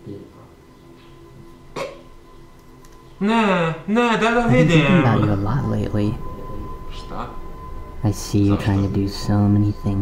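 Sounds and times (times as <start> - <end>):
faint background music: 0.0 - 10.0
hiccup or snort: 1.8 - 2.0.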